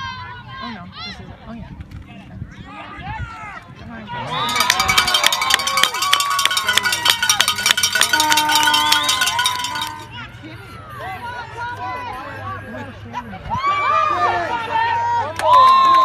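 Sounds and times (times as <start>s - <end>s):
crowd shouting: 2.7s - 16.0s
cowbell ringing fast: 4.4s - 10.1s.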